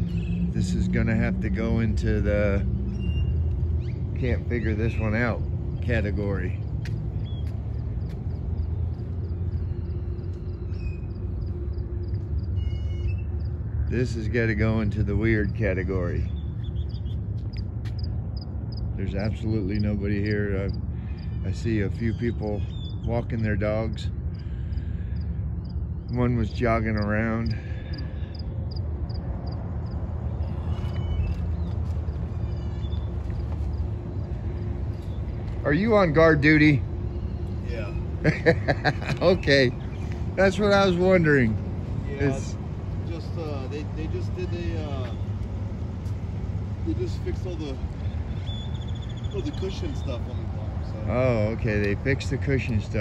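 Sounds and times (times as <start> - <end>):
bird chirps: 0.0 - 0.9, 2.8 - 4.2, 6.8 - 13.8, 16.2 - 23.4, 30.3 - 35.7, 48.0 - 50.6.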